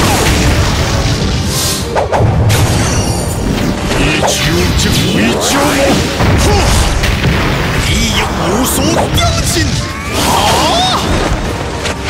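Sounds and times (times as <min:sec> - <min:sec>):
booming impact effects: 0:00.0 - 0:08.4
dramatic fight music: 0:00.0 - 0:12.0.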